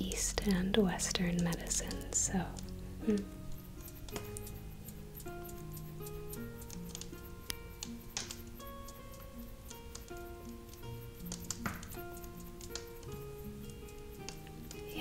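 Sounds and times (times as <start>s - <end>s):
tavern-style background music: 0.0s - 15.0s.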